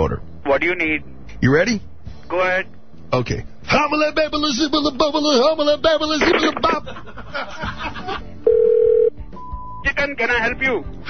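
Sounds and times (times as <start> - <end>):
loud steady telephone tone: 8.5 - 9.2.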